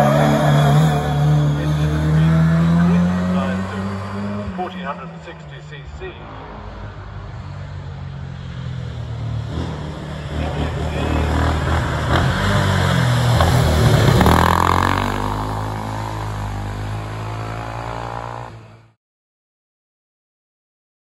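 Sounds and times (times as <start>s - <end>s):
racing car engine accelerating: 0.0s - 5.0s, 9.2s - 19.0s.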